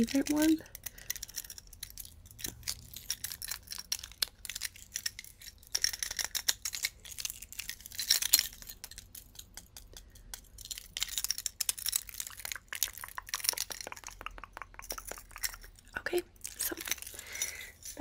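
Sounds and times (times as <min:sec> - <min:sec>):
necklace chains clinking: 0:00.0 - 0:18.0.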